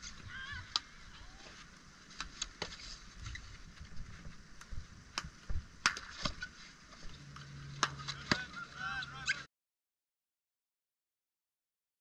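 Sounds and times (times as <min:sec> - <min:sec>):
low hum: 0:02.9 - 0:09.5
hockey sticks striking ball: 0:05.2 - 0:06.5, 0:07.8 - 0:08.6.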